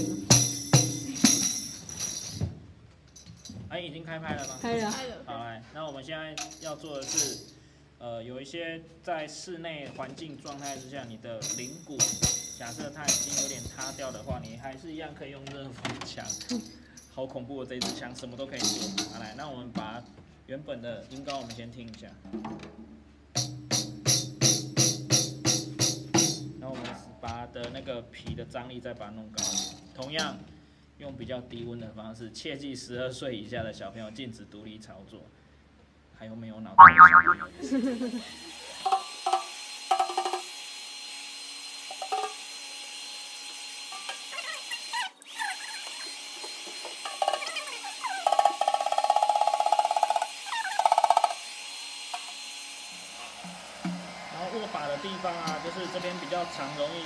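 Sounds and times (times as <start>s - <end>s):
tambourine struck by hand: 0.0s - 2.4s, 11.4s - 13.6s
buzzing tone: 36.8s - 37.5s.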